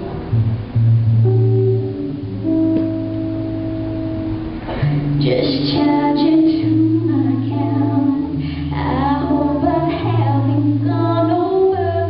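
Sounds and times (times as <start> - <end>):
guitar chords: 0.0 - 12.0
woman singing: 5.2 - 12.0.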